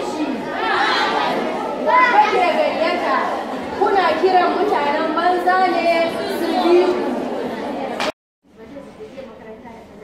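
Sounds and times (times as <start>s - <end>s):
audience chatter in echoing hall: 0.0s - 10.0s.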